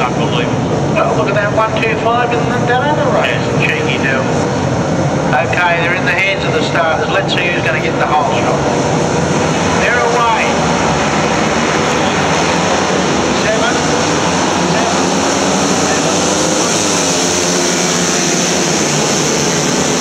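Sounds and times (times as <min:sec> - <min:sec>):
racing motorcycles revving and accelerating: 0:07.3 - 0:20.0.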